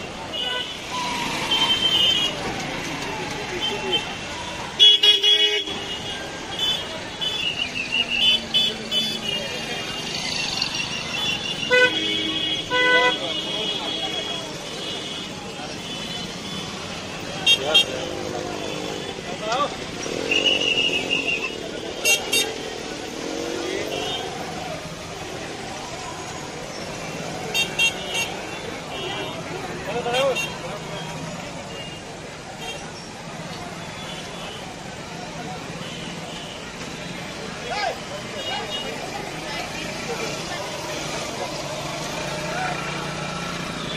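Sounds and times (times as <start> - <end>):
traffic: 0.0 - 43.9.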